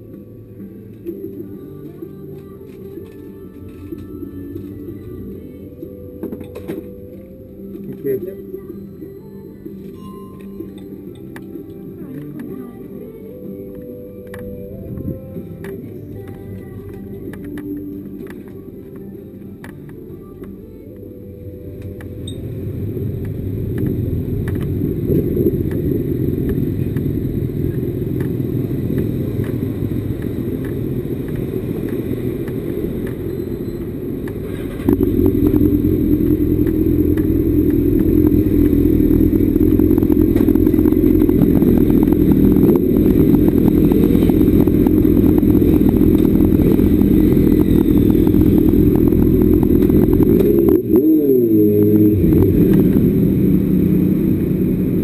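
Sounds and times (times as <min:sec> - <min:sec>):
motorcycle engines idling: 0:20.7 - 0:55.0.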